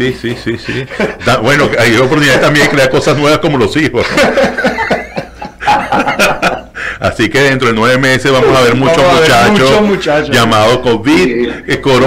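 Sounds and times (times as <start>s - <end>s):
men laughing: 0.1s - 7.0s, 11.2s - 12.0s.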